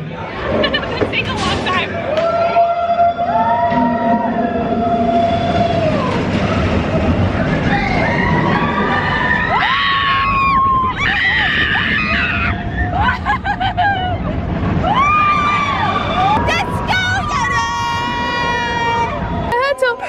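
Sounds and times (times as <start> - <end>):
roller coaster train rumbling: 0.0 - 20.0
roller coaster riders screaming: 0.1 - 20.0.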